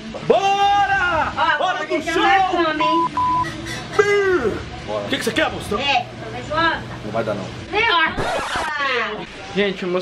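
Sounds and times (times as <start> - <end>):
censor bleep: 2.9 - 3.5.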